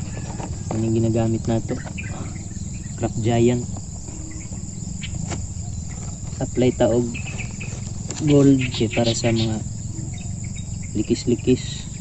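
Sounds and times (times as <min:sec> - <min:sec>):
crickets and insects chirring: 0:00.0 - 0:12.0
man's voice: 0:08.2 - 0:09.7.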